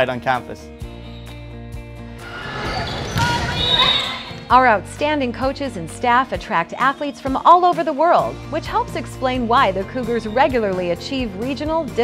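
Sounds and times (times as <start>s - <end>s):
players and spectators calling out: 2.2s - 4.6s.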